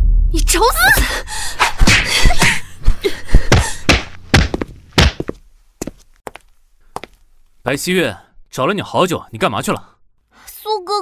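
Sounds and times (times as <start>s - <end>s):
heavy thuds of blows: 1.5s - 5.4s.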